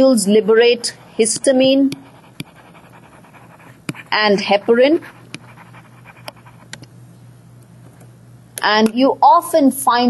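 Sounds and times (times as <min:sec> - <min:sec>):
stylus scratching on tablet: 0:00.0 - 0:06.8.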